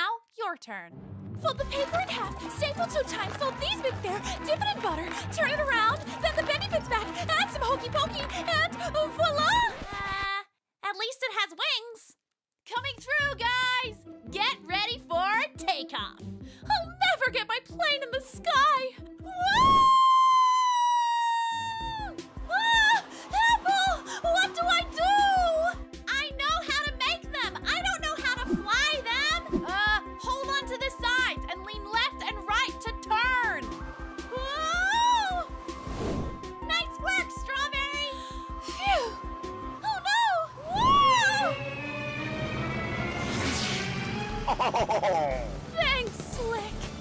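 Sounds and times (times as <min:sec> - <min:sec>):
high swooping wordless cries: 0:33.4 - 0:45.7
cartoon music: 0:34.3 - 0:35.6, 0:36.6 - 0:42.9
brief whoosh: 0:35.8 - 0:36.4, 0:40.8 - 0:44.4
falling whistle-like tone: 0:40.6 - 0:44.2.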